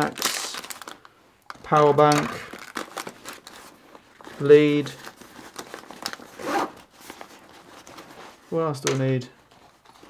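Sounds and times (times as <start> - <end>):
fabric rustling: 2.7 - 8.8
bag zipper: 6.4 - 6.8.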